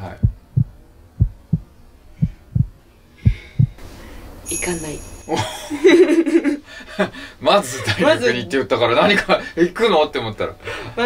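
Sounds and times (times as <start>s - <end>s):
heartbeat thumps: 0.0s - 3.8s.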